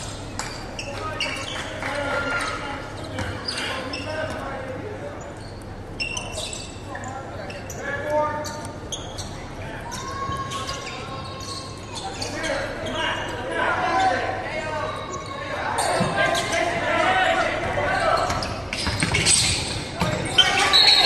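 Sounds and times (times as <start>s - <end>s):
basketball bouncing: 18.3s - 19.3s
people calling out: 20.2s - 21.0s.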